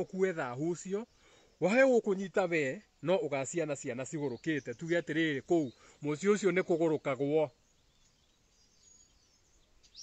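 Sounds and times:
man's voice: 0.0s - 7.6s
faint high chirps: 0.8s - 10.0s.

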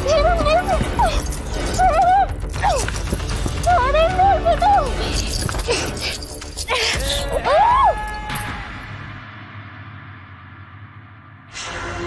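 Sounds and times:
woman's muffled cries: 0.0s - 3.0s.

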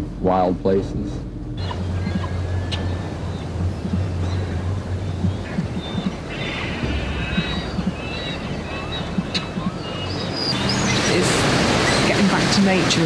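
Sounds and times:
low steady hum: 0.0s - 13.0s
wind: 0.0s - 13.0s
water: 0.2s - 13.0s
high-pitched bird calls: 1.6s - 12.3s.

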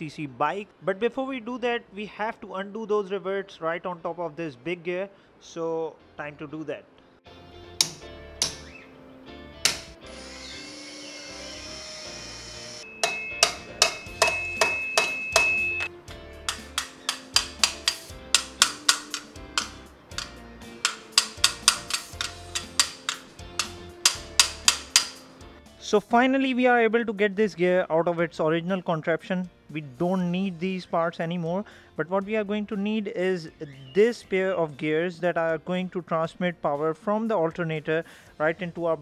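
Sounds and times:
background music: 0.0s - 39.0s
hammer striking metal chisel: 7.8s - 8.8s, 9.6s - 9.9s, 12.9s - 25.3s.

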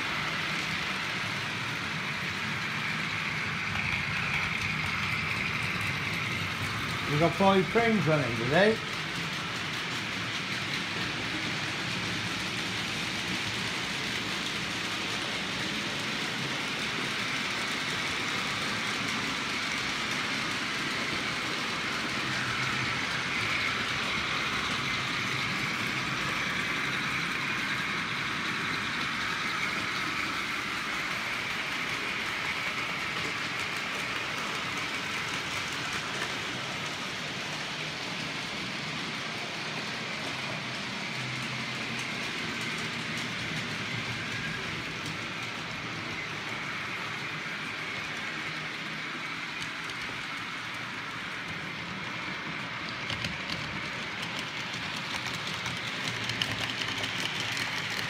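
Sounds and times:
model trains running on rails: 0.0s - 58.0s.

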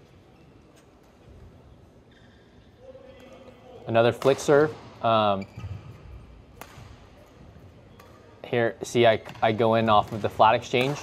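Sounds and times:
faint badminton rally: 2.8s - 11.0s
racket hitting shuttlecock: 6.5s - 8.2s, 9.2s - 11.0s.

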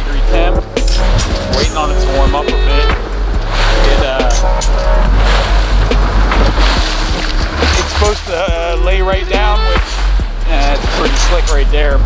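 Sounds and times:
boat engine drone: 0.0s - 12.0s
rushing water: 0.0s - 12.0s.

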